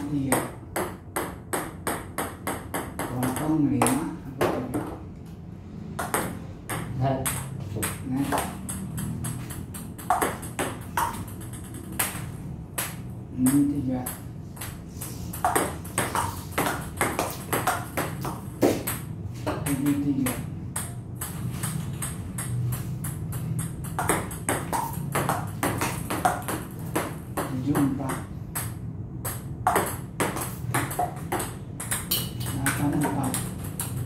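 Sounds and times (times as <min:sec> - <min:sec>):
ping pong ball clicking: 0:00.1 - 0:05.0, 0:06.0 - 0:34.0.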